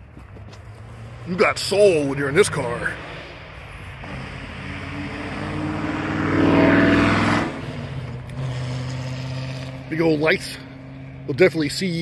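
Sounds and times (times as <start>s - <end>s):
motor vehicle passing by: 0.1s - 12.0s.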